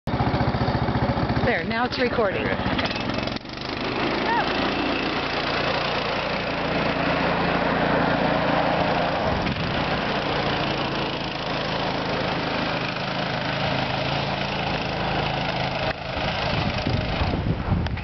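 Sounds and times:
go-kart engine running: 0.1s - 18.0s.

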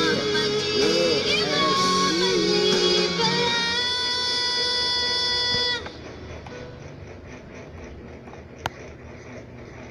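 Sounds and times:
pop ballad from a screen: 0.0s - 5.9s.

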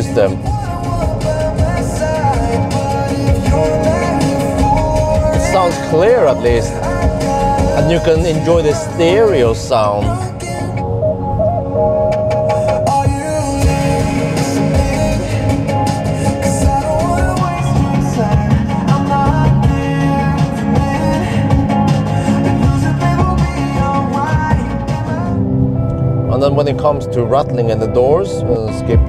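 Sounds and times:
rock music from car stereo: 0.0s - 29.0s.

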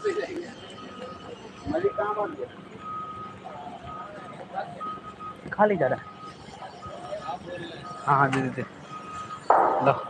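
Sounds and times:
faint voices: 0.0s - 10.0s
high electronic beeps: 0.0s - 10.0s.

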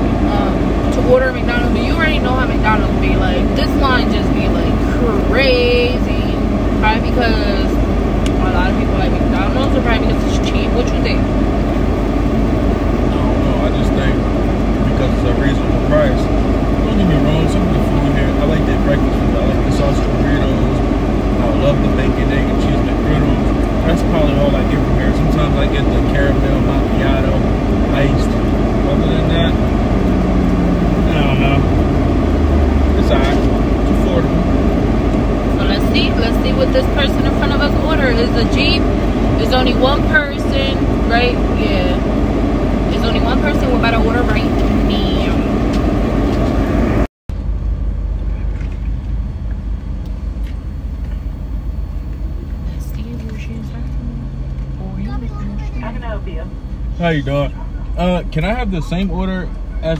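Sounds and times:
indistinct voices: 0.0s - 47.1s, 52.6s - 59.9s
car engine rumble: 0.0s - 59.9s.

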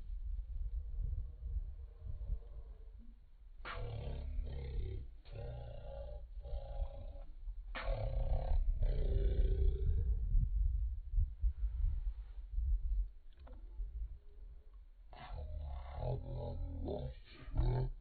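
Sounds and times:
wind rumbling on microphone: 0.0s - 16.6s.

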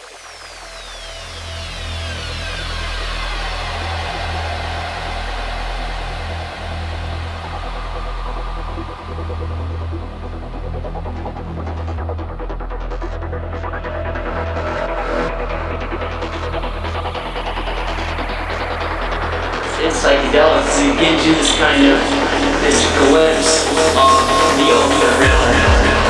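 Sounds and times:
deep bass drone: 0.0s - 26.0s
falling synth sweeps: 0.0s - 26.0s.

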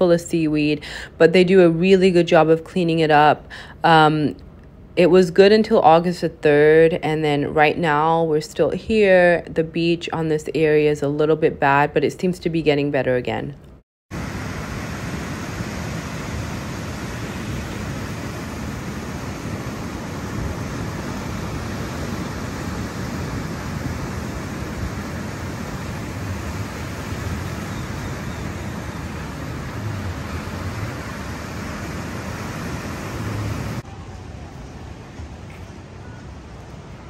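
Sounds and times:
ocean surf breaking: 14.1s - 35.3s.

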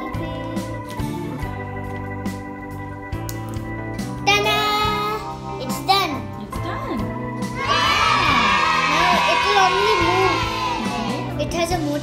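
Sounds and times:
background music: 0.0s - 12.0s
children cheering: 7.6s - 11.3s.

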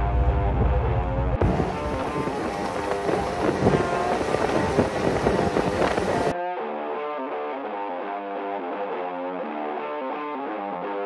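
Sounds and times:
deep low rumble: 0.0s - 6.3s
snowmobile engine and wind: 0.0s - 6.3s.

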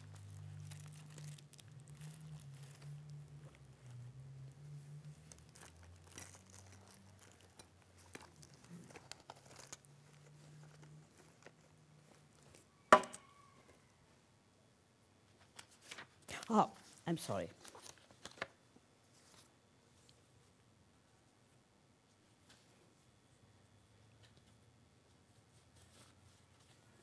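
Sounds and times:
rustling and crinkling by hand: 0.0s - 14.3s, 15.2s - 27.0s.

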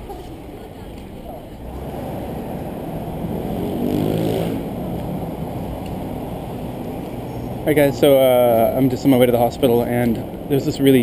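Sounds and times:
traffic rumble: 0.0s - 11.0s
vehicle engine passing by: 1.5s - 9.0s.

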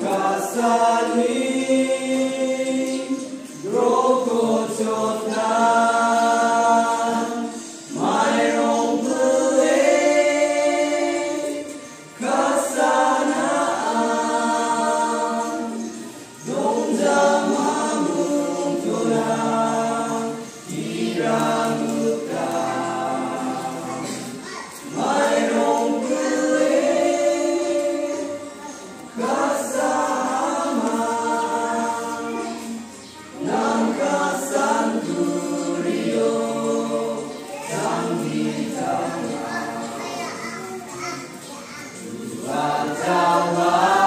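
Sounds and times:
choir singing a hymn: 0.0s - 44.0s.

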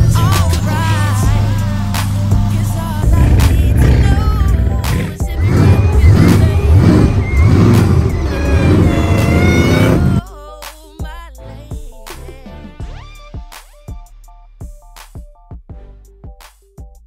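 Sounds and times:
car engine revving: 0.0s - 10.2s
loud hip hop music: 0.0s - 17.0s.

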